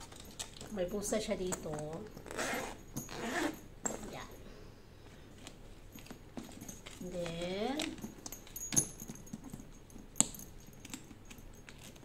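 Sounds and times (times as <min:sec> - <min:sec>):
zipper being pulled open: 0:02.2 - 0:03.6.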